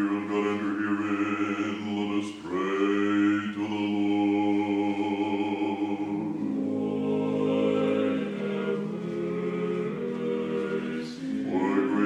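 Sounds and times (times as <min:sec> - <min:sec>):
a cappella choral chant: 0:00.0 - 0:12.0.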